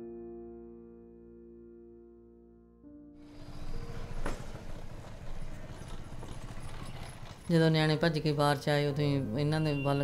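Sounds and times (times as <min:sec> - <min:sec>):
piano note: 0:00.0 - 0:04.9.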